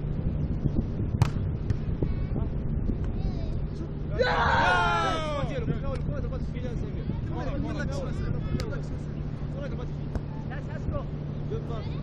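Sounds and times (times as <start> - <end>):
steady low rumble: 0.0 - 12.0
sharp knocks or slaps: 1.2 - 1.4
people talking and calling out: 2.0 - 12.0.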